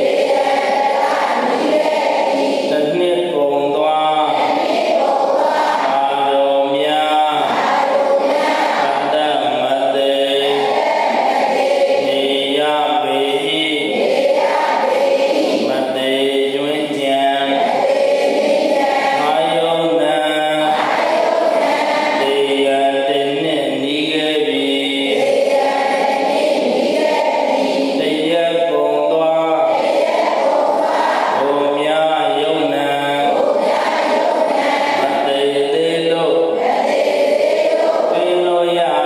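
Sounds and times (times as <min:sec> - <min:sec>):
group chanting in unison: 0:00.0 - 0:39.0.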